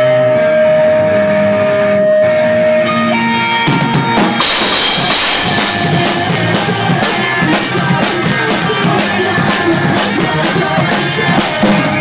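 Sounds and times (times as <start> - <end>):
amplified electric guitars playing: 0.0 - 12.0.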